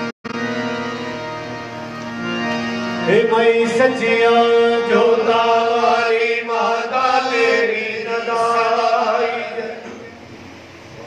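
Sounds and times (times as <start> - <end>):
person chanting a hymn: 2.9 - 10.1.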